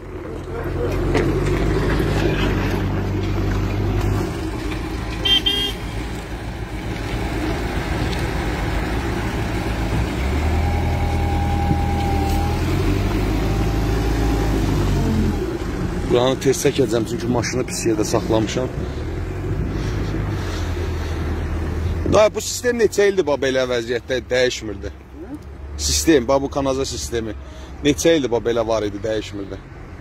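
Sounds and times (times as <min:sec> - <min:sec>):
diesel engine running: 0:00.0 - 0:22.1.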